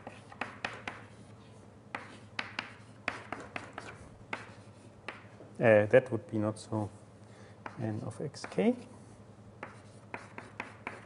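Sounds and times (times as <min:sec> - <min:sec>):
writing tool tapping on board: 0:00.0 - 0:01.1, 0:01.9 - 0:05.3, 0:09.6 - 0:11.0
faint scratching on board: 0:07.7 - 0:11.0.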